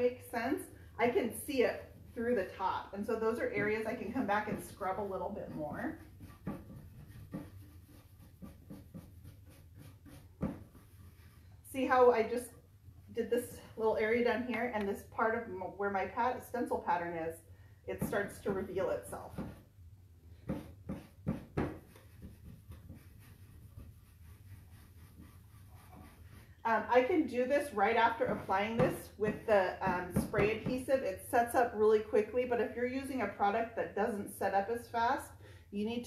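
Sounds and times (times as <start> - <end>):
bristle brush scrubbing: 1.0 - 11.9, 20.6 - 29.5.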